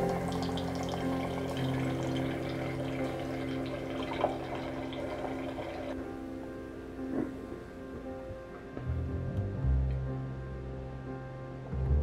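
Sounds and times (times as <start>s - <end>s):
wine pouring into glass: 0.0s - 6.0s.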